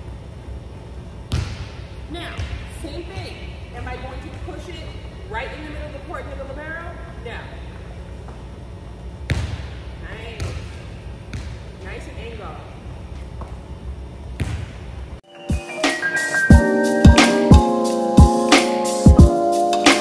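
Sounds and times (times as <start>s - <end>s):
steady low hum: 0.0s - 20.0s
ball impacts ringing in gym: 1.2s - 4.8s, 9.2s - 12.1s.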